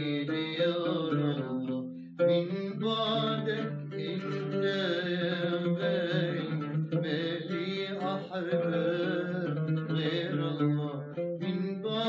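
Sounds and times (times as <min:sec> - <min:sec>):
man singing wordless line: 0:00.0 - 0:12.0.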